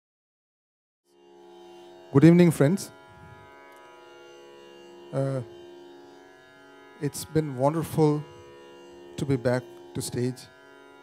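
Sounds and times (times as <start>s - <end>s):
soft musical drone: 1.1s - 11.0s.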